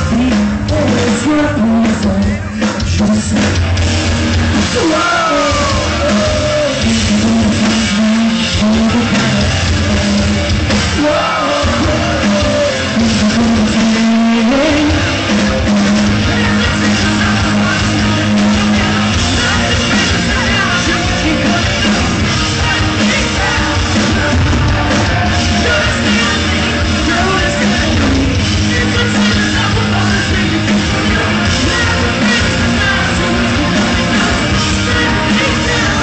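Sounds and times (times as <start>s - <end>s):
man singing: 0.0s - 3.6s, 4.7s - 36.0s
live rock band: 0.0s - 36.0s.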